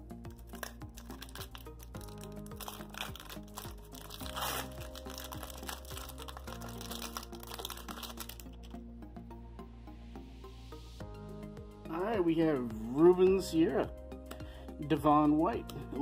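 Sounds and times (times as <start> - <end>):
music of sustained chords: 0.0 - 16.0
card wrapper crinkling: 0.3 - 8.7.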